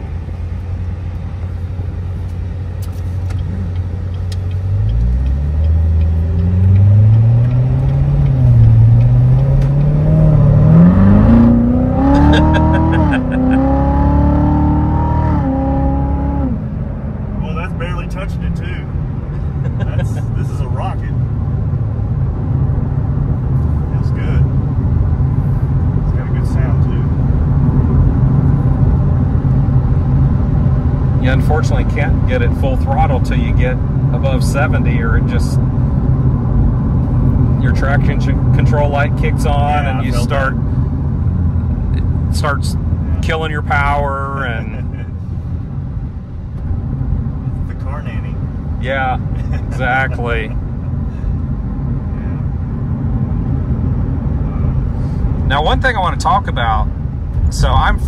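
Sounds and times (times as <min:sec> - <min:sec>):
road noise: 0:00.0 - 0:58.0
car engine accelerating through gears: 0:02.6 - 0:17.8.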